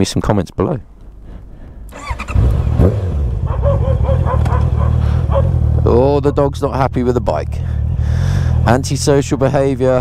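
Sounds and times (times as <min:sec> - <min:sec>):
motorcycle engine starting and idling: 0:01.9 - 0:10.0.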